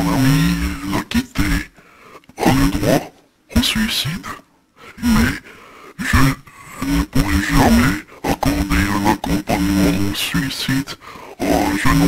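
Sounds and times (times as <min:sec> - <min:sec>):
low chopped voice fragments: 0:00.0 - 0:01.7, 0:02.3 - 0:12.0.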